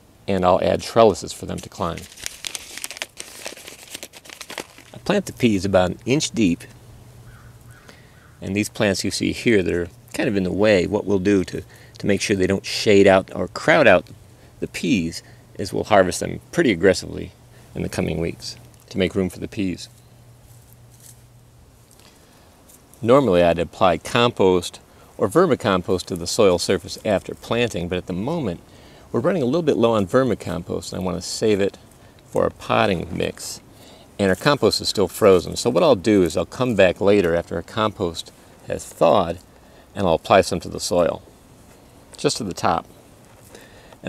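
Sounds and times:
low steady hum: 0.0 - 44.0
scratching and rustling of soil: 0.6 - 6.5, 17.7 - 28.6, 29.2 - 39.5, 40.1 - 43.6
paper packet crinkling: 1.3 - 5.6.

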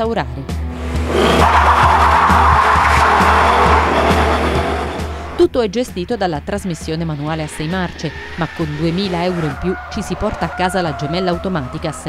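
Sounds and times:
background music: 0.0 - 12.0
car engine running hard: 0.6 - 5.5, 6.4 - 12.0
tyres squealing: 0.8 - 5.5, 6.2 - 12.0.

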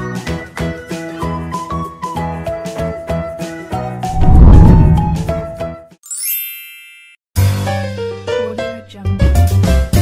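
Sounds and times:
bright sparkling chime: 6.0 - 7.2.

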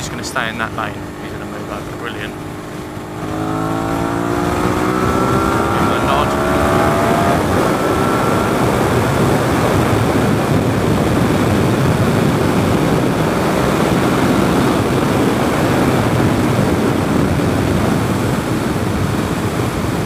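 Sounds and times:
motorcycle engine: 0.0 - 20.0
wind rush over microphone: 0.0 - 20.0.

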